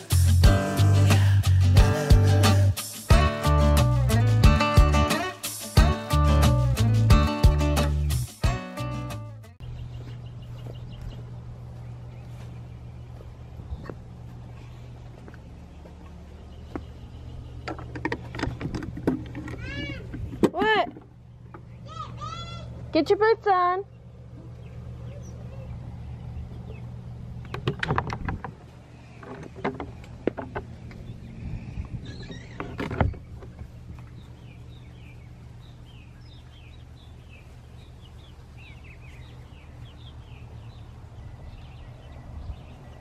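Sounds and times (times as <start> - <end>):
low steady rumble: 9.6 - 43.0
steady low hum: 9.6 - 43.0
bird chirps: 31.0 - 43.0.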